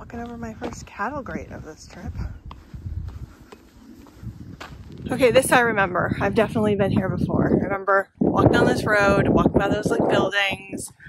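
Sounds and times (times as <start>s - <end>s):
low rumble: 0.0s - 10.7s.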